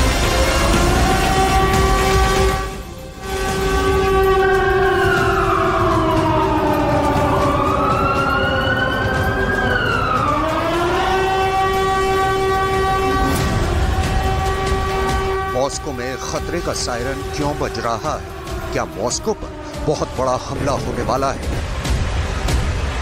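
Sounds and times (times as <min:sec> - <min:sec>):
warning siren wailing: 0:00.0 - 0:23.0.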